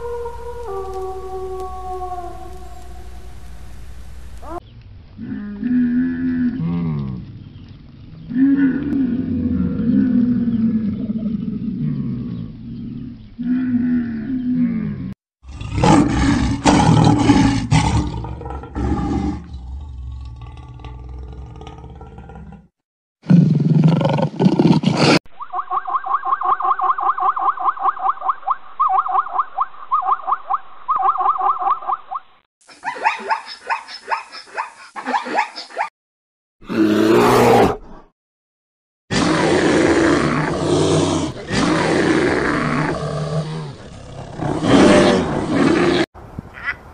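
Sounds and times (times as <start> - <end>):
lion roaring: 8.2 - 25.2, 36.6 - 38.0, 39.1 - 46.1.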